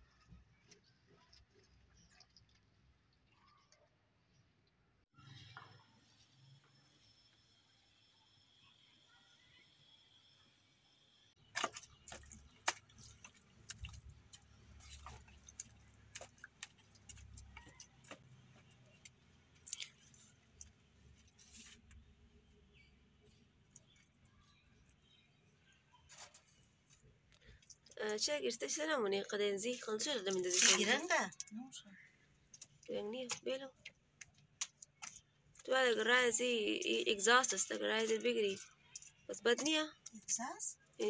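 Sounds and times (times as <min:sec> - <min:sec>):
hands mixing wet mud: 0:00.0 - 0:04.8, 0:11.4 - 0:28.3, 0:29.7 - 0:31.5, 0:32.4 - 0:36.8.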